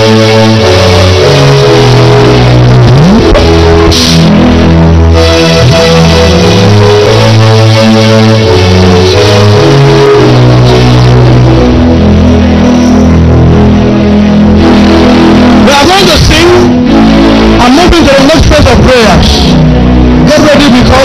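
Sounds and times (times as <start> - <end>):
live church band music: 0.0 - 21.0
man speaking: 15.6 - 16.8, 17.6 - 19.6, 20.2 - 21.0.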